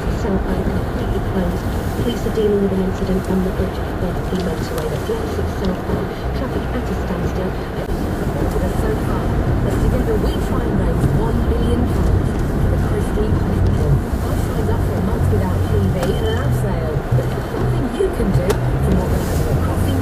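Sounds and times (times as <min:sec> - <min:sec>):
car engine and tyre noise: 0:00.0 - 0:20.0
radio presenter talking: 0:00.0 - 0:20.0.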